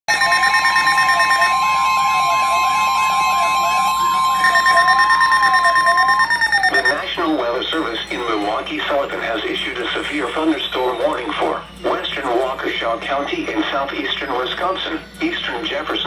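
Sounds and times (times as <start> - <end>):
siren-like warble: 0.1 - 12.7
weather radio warning tone: 0.1 - 16.0
broadcast voice speaking: 6.8 - 16.0.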